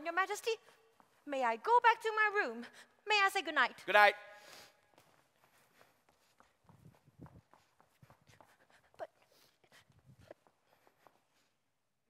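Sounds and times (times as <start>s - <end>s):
woman's voice in a large hall: 0.0s - 3.9s
footsteps on wooden stage floor: 0.4s - 1.6s, 4.8s - 11.6s.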